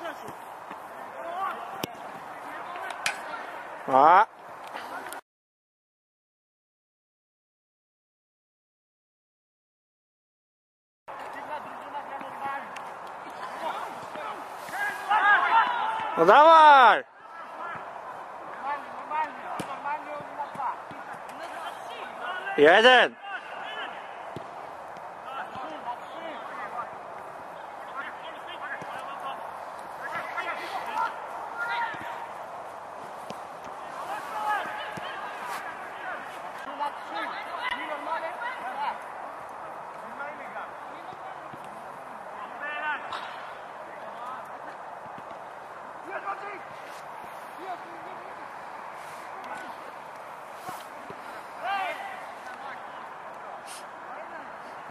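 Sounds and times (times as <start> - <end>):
men talking: 0.0 - 5.1, 11.1 - 24.3, 25.0 - 54.9.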